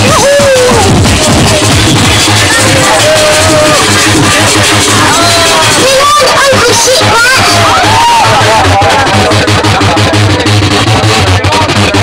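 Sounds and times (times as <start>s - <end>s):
loud electronic dance music: 0.0s - 12.0s.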